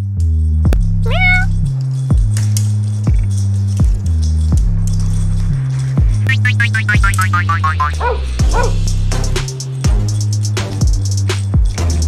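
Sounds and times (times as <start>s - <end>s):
cat meowing: 1.0s - 1.6s
electronic music with beat: 6.0s - 12.0s.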